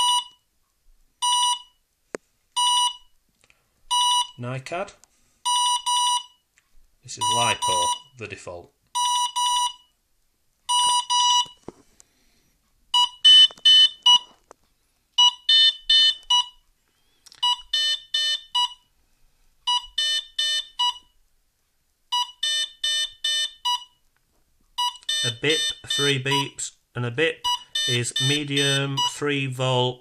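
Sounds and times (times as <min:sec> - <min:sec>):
electronic beep codes: 0:00.0 - 0:00.4, 0:02.6 - 0:03.1, 0:03.9 - 0:04.4, 0:05.5 - 0:06.4, 0:07.2 - 0:08.2, 0:09.0 - 0:09.9, 0:10.7 - 0:11.6, 0:13.0 - 0:14.3, 0:17.4 - 0:18.8, 0:19.7 - 0:21.0, 0:24.8 - 0:26.6, 0:27.4 - 0:29.4.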